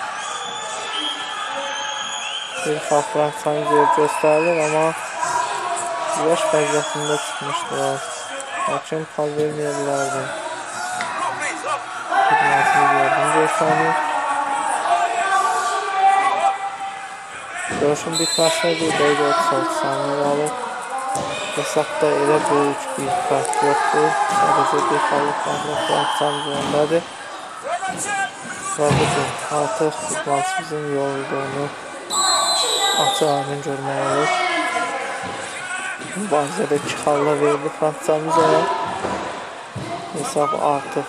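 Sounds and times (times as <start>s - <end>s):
shrill whistle: 0.0s - 2.6s, 18.2s - 18.6s, 32.1s - 33.3s
arena noise: 0.0s - 41.0s
faint hall background noise: 0.0s - 41.0s
men talking and calling out: 0.0s - 41.0s
man speaking: 2.6s - 10.4s, 11.2s - 14.0s, 17.7s - 20.6s, 21.5s - 27.1s, 27.8s - 31.8s, 33.0s - 34.3s, 36.1s - 38.7s, 40.1s - 41.0s.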